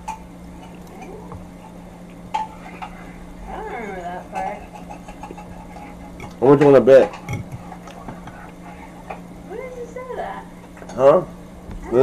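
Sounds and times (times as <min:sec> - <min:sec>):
fork clinking on ceramic plate: 0:04.4 - 0:07.8.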